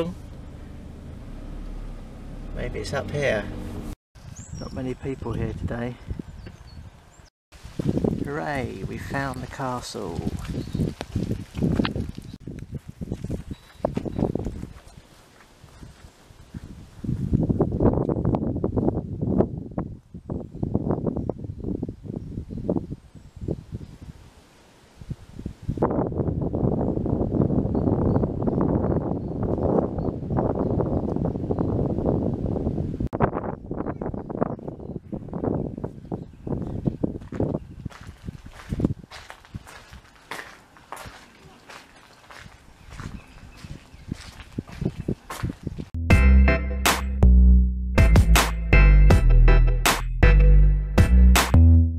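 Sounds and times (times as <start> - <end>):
footsteps on wet gravel: 7.6 - 16.8, 37.2 - 46.0.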